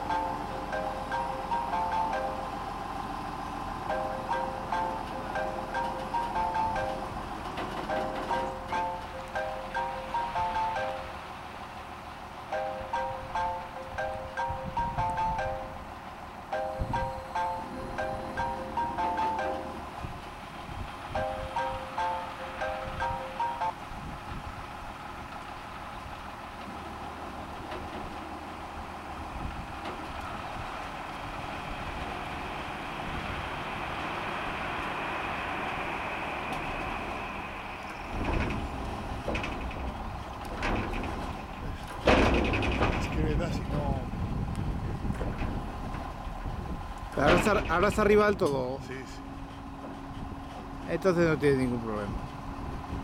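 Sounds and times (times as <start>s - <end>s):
tractor engine running: 0.0s - 53.0s
loud knocks and bangs: 38.1s - 43.2s.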